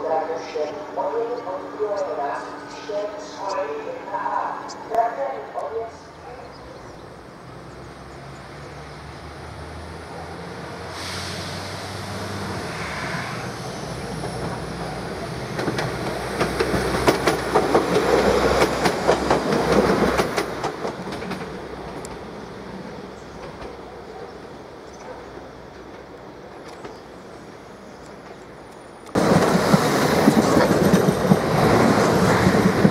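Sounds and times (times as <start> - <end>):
diesel train engine hum: 0.0 - 32.9
train wheels clicking over rail joints: 15.5 - 22.2, 29.1 - 32.9.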